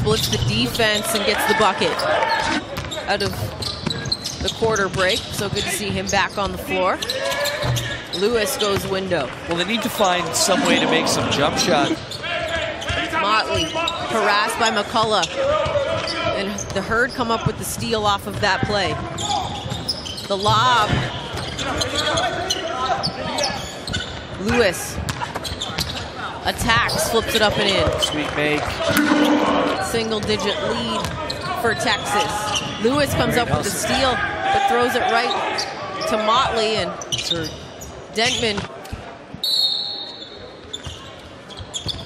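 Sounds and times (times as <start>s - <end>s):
voices in an arena: 0.0s - 42.0s
sneakers squeaking: 2.8s - 5.6s, 40.1s - 42.0s.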